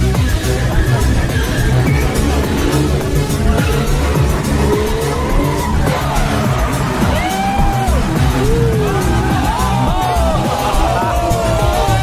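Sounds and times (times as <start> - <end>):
car engine revving: 0.0 - 12.0
electronic music with steady beat: 0.0 - 12.0
tyres squealing: 0.0 - 12.0.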